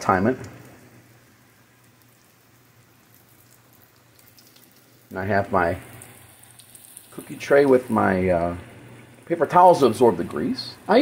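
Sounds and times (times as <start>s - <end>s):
cutlet sizzling in frying pan: 0.0s - 11.0s.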